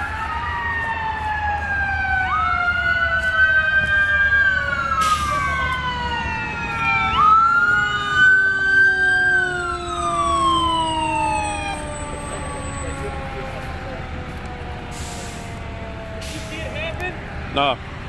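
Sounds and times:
emergency vehicle sirens wailing: 0.0s - 18.0s
low siren tone winding downward: 0.0s - 18.0s.

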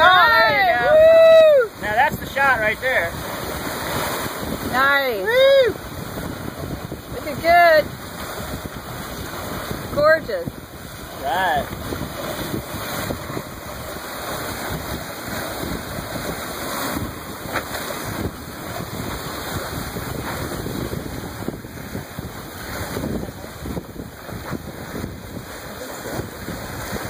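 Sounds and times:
sea water and waves rushing: 0.0s - 27.0s
wind buffeting microphone: 0.0s - 27.0s.

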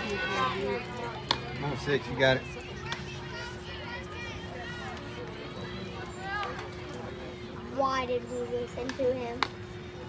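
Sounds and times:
chatter of spectators and players: 0.0s - 10.0s.

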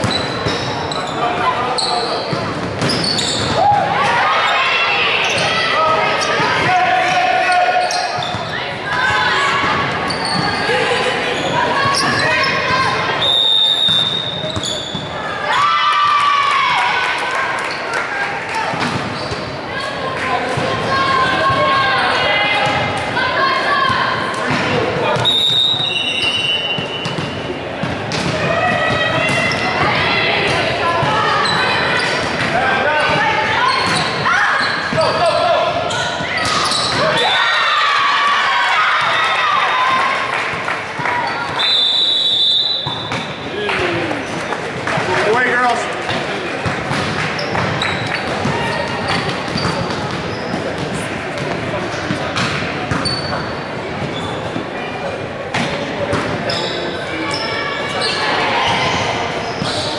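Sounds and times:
players calling and shouting: 0.0s - 59.9s.

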